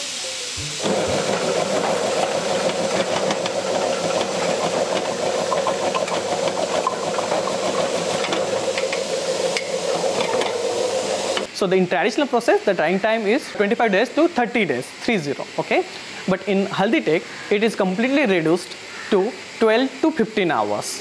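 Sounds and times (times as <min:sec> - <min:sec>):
slicing machine motor hum: 0:00.8 - 0:11.5.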